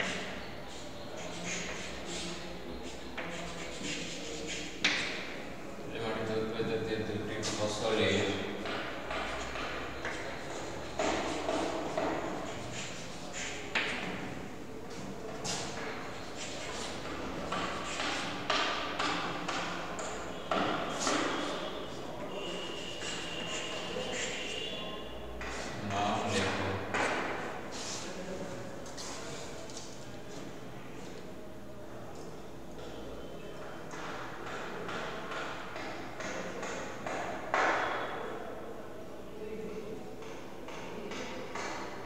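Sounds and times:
chalk writing on a blackboard: 0:00.0 - 0:05.4, 0:08.6 - 0:14.5, 0:15.4 - 0:28.2, 0:33.9 - 0:37.8.

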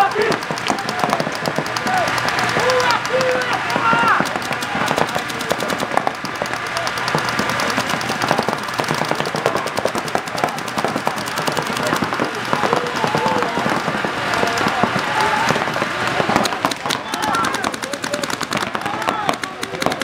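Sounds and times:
paintball markers firing rapidly: 0:00.0 - 0:20.0.

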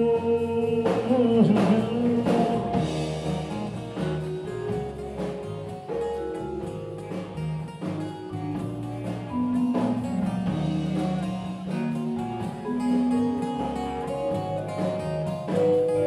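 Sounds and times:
bass guitar: 0:00.0 - 0:16.0
drum kit: 0:00.0 - 0:16.0
electric guitars holding notes: 0:00.0 - 0:16.0.

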